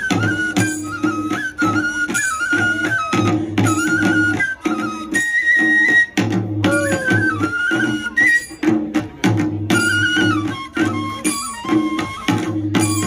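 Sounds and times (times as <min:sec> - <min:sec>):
bamboo flute melody: 0:00.0 - 0:13.0
barrel drums beating: 0:06.4 - 0:07.9.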